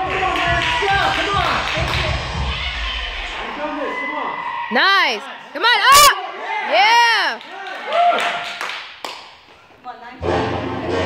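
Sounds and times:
high-pitched voice shouting: 0:04.7 - 0:07.4.

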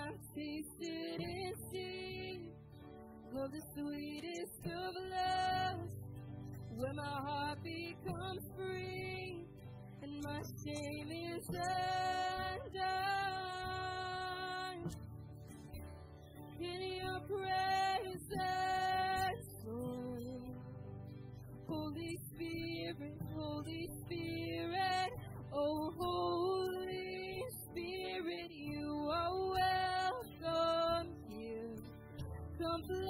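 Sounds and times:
worship band singing with guitars and drums: 0:00.0 - 0:33.0.

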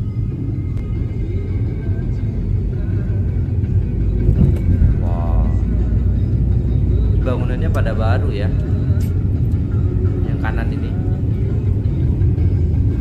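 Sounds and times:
car driving low rumble: 0:00.0 - 0:13.0
faint background music: 0:00.0 - 0:13.0.

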